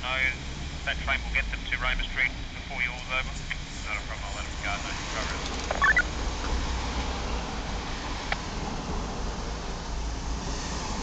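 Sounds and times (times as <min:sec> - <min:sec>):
faint radio speech: 0:00.0 - 0:06.0
radio hiss: 0:00.0 - 0:06.0
radio chirp: 0:00.9 - 0:06.1.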